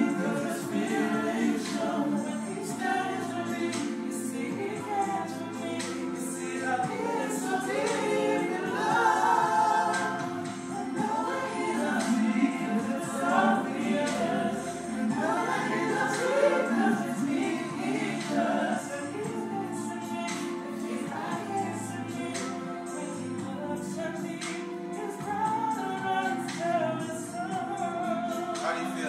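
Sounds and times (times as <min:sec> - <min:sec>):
choir singing: 0:00.0 - 0:29.0.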